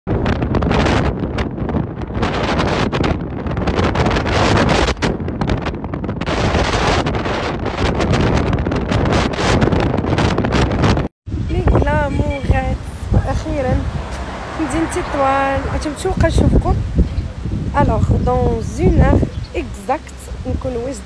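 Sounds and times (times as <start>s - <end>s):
wind buffeting microphone: 0.1s - 21.0s
car road noise: 11.9s - 17.7s.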